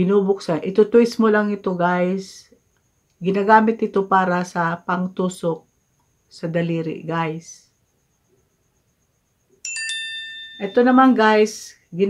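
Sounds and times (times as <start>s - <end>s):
electronic chime tones: 9.6s - 11.2s.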